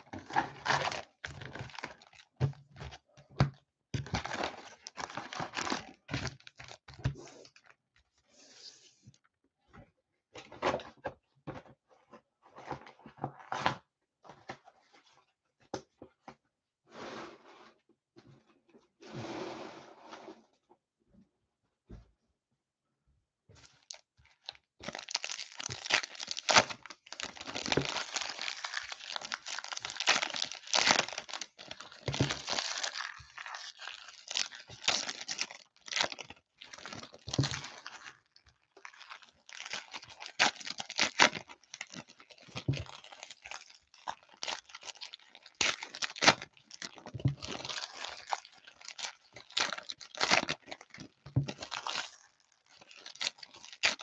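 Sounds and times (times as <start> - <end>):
foil wrappers tearing and crinkling: 0.0 - 2.3, 23.9 - 38.3, 38.9 - 54.0.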